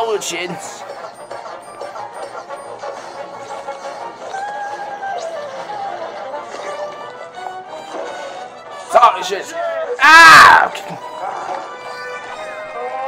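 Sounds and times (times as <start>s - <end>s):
gliding melodic background music: 0.0s - 13.0s.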